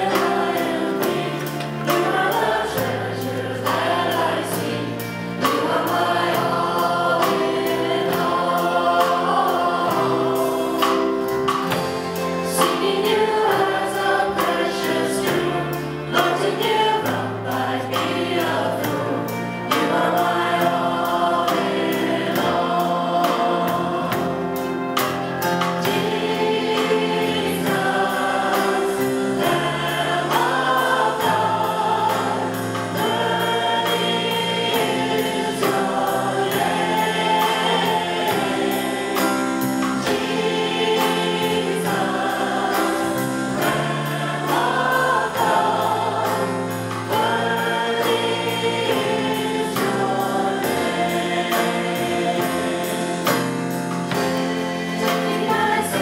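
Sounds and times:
backing singers: 0.0s - 56.0s
drums: 0.0s - 56.0s
keyboard: 0.0s - 56.0s.

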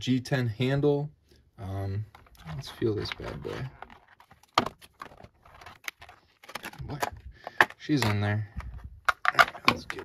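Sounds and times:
plastic blister tray crackling: 2.1s - 10.0s.

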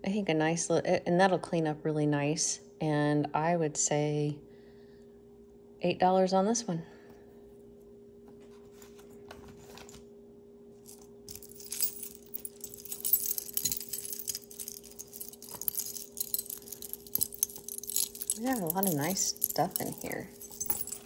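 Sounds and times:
faint steady hum: 0.0s - 21.0s
metal jewelry jingling: 10.9s - 21.0s.

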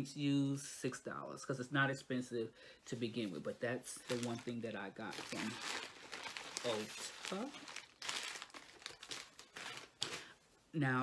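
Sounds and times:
packaging crinkling: 3.1s - 10.4s.

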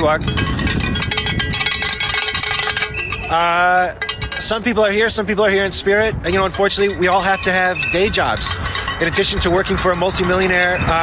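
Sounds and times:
hand bell clanking rapidly: 0.0s - 11.0s.

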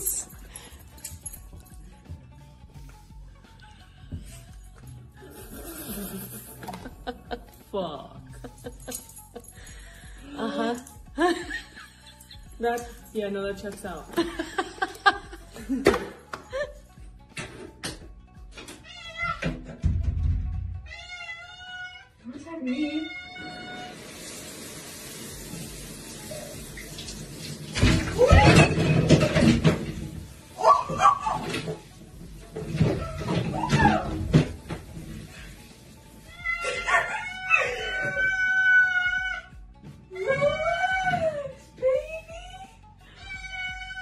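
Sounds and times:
cat meowing: 18.8s - 19.5s, 20.8s - 24.0s, 36.3s - 39.5s, 43.2s - 44.0s.

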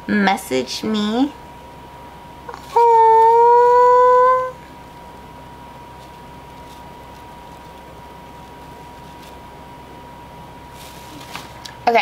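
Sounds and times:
woman singing a long high note: 2.8s - 4.6s.

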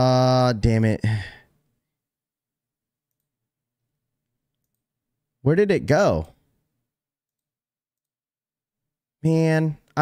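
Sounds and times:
man sighing: 1.0s - 1.5s.

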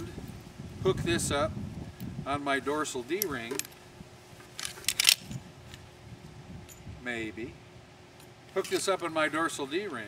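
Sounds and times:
metal carabiner clicking: 3.2s - 3.8s, 4.5s - 5.8s.

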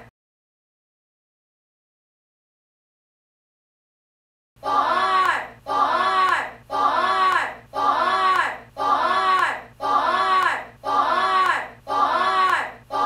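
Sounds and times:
voices shouting together: 4.6s - 13.0s.

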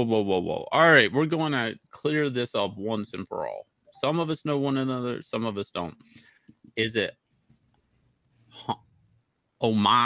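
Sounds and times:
man speaking: 0.0s - 6.0s, 6.7s - 7.2s, 9.6s - 10.0s.

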